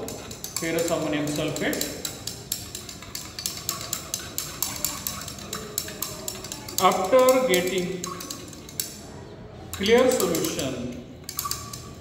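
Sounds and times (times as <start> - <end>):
glass rod clinking in beaker: 0.0 - 9.0, 9.8 - 12.0.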